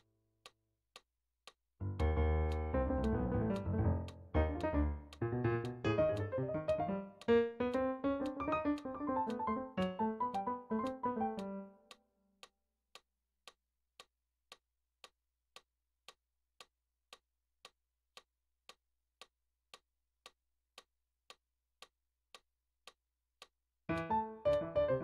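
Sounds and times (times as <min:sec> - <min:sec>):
metronome clicking: 0:01.9 - 0:13.0, 0:23.9 - 0:25.0.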